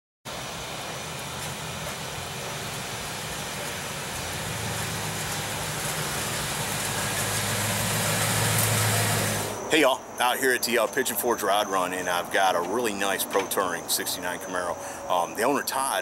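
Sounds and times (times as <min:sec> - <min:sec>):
car engine running at low speed: 0:00.3 - 0:09.6.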